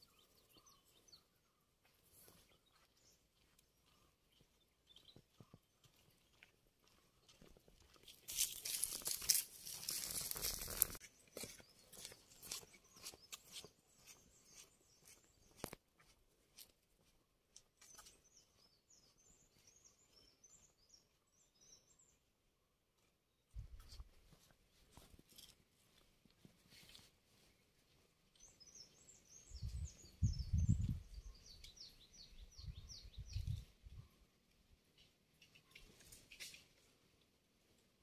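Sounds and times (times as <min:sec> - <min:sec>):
faint bird chirps: 0:28.4 - 0:34.4.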